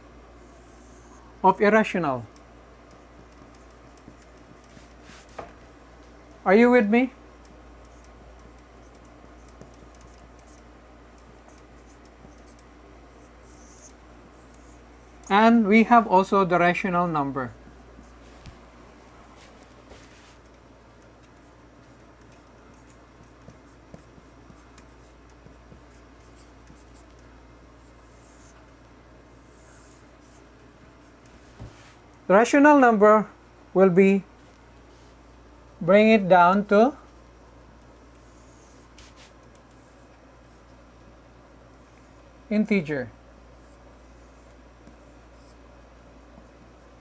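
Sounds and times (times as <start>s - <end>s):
low steady hum: 0.0s - 47.0s
marker scratching on whiteboard: 7.8s - 14.9s, 21.2s - 28.6s
marker squeaking on whiteboard: 21.2s - 27.2s.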